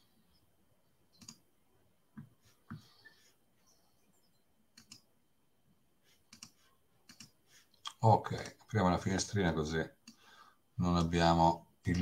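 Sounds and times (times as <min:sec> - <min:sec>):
computer clicks: 0:01.1 - 0:01.5, 0:04.7 - 0:05.1, 0:06.3 - 0:08.6.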